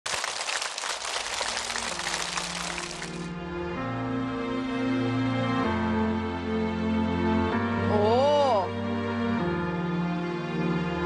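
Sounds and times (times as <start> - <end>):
audience applauding: 0.0 - 3.3.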